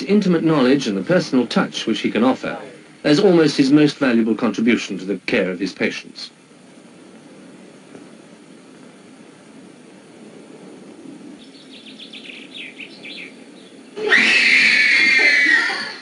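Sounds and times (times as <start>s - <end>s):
child wailing: 14.0s - 16.0s.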